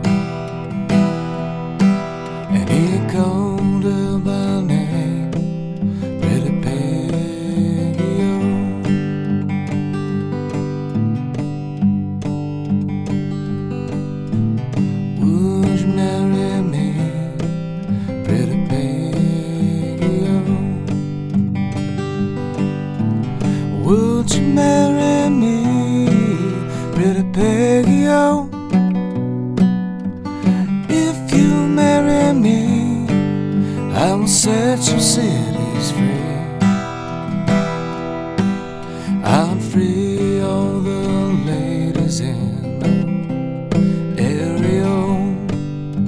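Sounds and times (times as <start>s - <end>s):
fingerstyle acoustic guitar: 0.0s - 46.0s.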